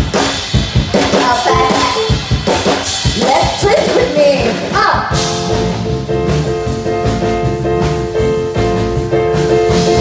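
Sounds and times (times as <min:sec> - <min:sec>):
drum kit quick steady beat: 0:00.0 - 0:10.0.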